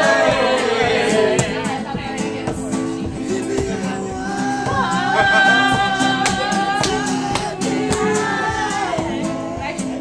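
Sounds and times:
strummed acoustic guitar: 0.0s - 10.0s
person singing: 1.0s - 10.0s.

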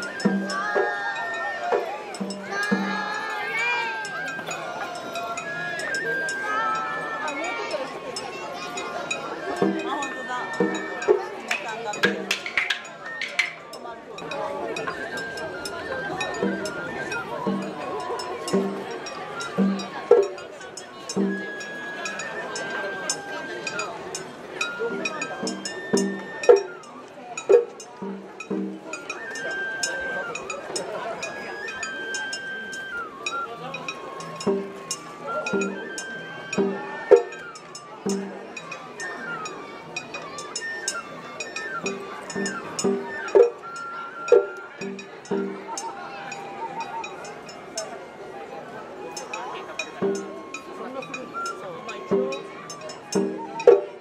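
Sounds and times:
drum beats: 0.0s - 6.0s, 9.4s - 30.9s, 32.2s - 39.2s, 40.0s - 43.7s, 44.3s - 46.5s, 49.9s - 51.3s, 52.0s - 54.0s
bamboo flute melody: 0.0s - 54.0s
crowd voices: 0.0s - 54.0s.

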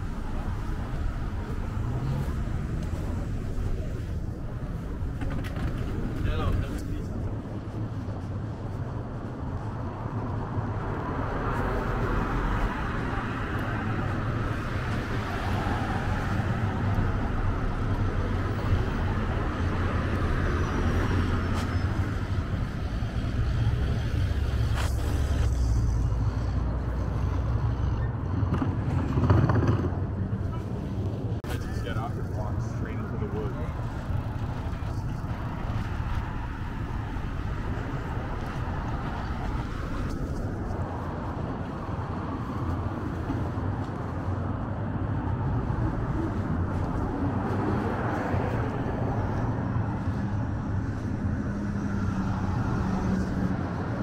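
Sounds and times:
car traffic passing: 0.0s - 54.0s.

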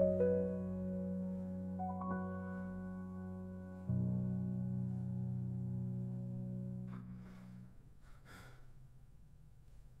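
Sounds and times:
short breath-like hiss: 7.1s - 8.8s.

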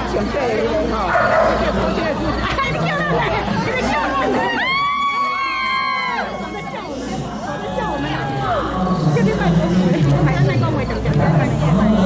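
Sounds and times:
people talking over one another: 0.0s - 12.0s
dog barking: 1.1s - 1.6s.

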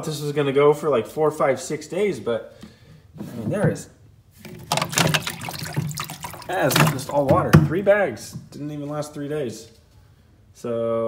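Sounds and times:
hand splashing in water: 4.5s - 7.3s.

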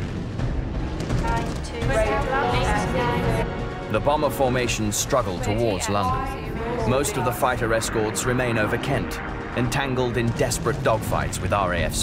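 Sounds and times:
low rumble: 2.2s - 12.0s
pitched tones: 5.2s - 11.1s.

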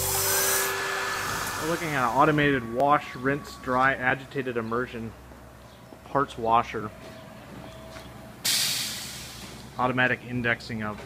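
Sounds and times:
parts washer hissing: 0.0s - 3.8s, 8.4s - 9.8s.

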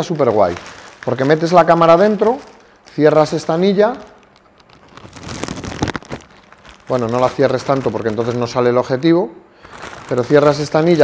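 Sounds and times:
plastic cover crinkling: 0.0s - 11.0s.

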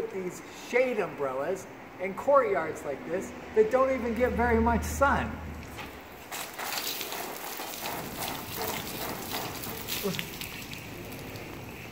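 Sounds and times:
water spattering on rain jacket: 5.6s - 11.9s
water splashing on wet paving: 5.6s - 11.9s.

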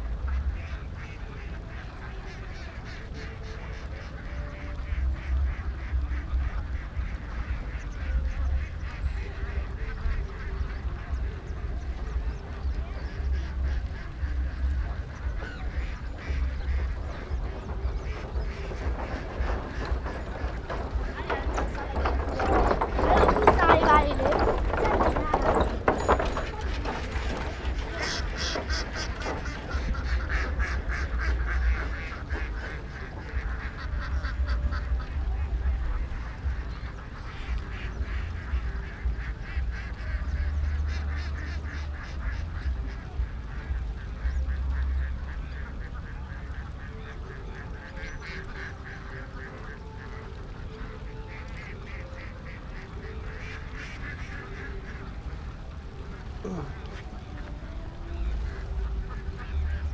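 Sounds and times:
ducks quacking: 0.0s - 59.9s
low rumble: 4.0s - 45.7s.

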